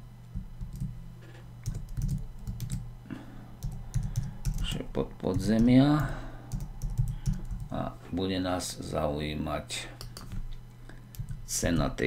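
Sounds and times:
keyboard typing: 0:00.6 - 0:00.9, 0:01.6 - 0:02.9, 0:03.6 - 0:07.7, 0:10.0 - 0:10.4, 0:11.1 - 0:11.4.

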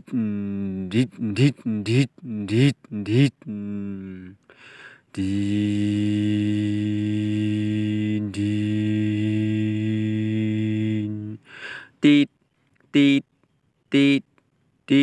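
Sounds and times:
man humming like a truck engine: 0:00.0 - 0:15.0.

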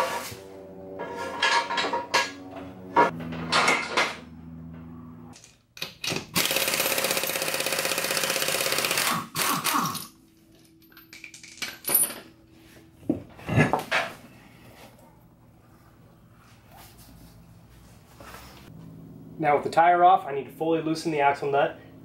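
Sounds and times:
metallic knocks and clinks: 0:10.5 - 0:12.4.

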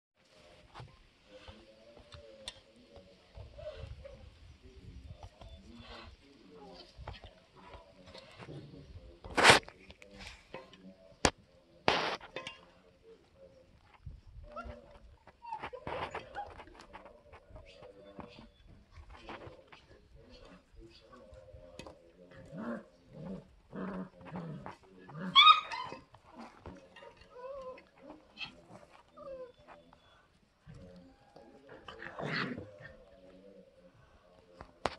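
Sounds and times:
puppies growling and whining: 0:14.4 - 0:18.5, 0:21.2 - 0:33.8
puppy yipping: 0:25.3 - 0:26.1.

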